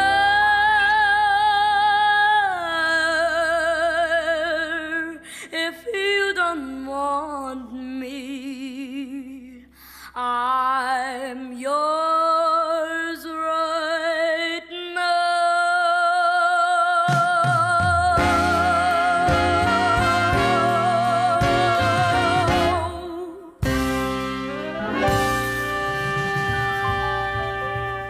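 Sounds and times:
woman singing with vibrato: 0.0s - 28.0s.

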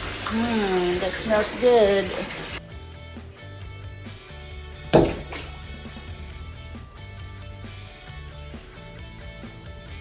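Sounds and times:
background music: 1.3s - 10.0s.

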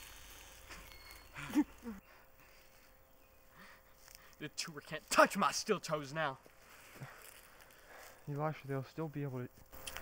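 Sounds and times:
faint outdoor hush: 0.0s - 10.0s.

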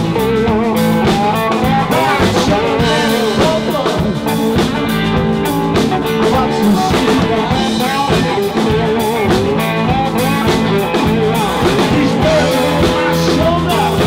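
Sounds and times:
bass guitar: 0.0s - 14.0s
drum kit: 0.0s - 14.0s
electric guitar: 0.0s - 14.0s.

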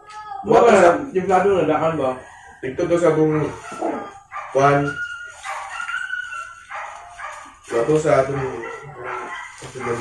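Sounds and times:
dog barking or yelping: 3.2s - 10.0s
dog whining: 3.3s - 7.6s.

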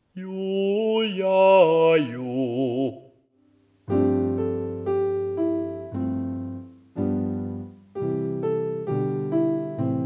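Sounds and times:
piano chords: 3.9s - 10.0s.

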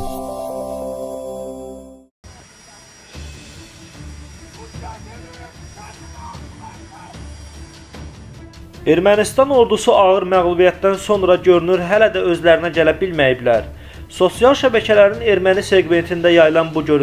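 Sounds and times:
electronic jingle: 0.0s - 2.1s.

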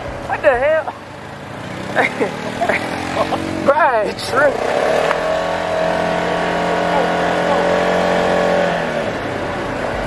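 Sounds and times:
off-road vehicle engine droning: 0.0s - 10.0s.

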